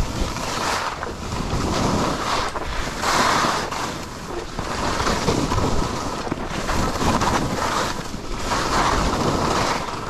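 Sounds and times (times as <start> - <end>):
skis scraping over snow: 0.0 - 10.0
wind on microphone: 0.0 - 10.0.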